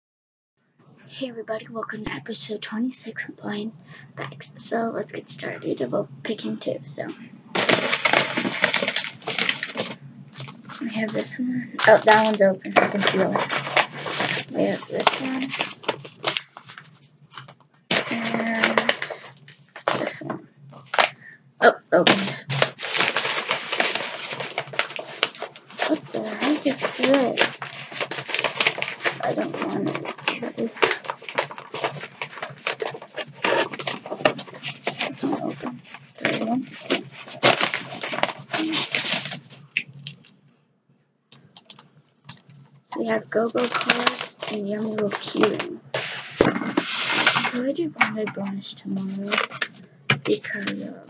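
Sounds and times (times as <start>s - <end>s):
crackly rustling: 7.0s - 21.3s, 22.0s - 40.5s, 41.4s - 51.0s
plastic packets crinkling: 7.6s - 20.2s, 20.8s - 21.3s, 22.0s - 40.4s, 43.0s - 51.0s.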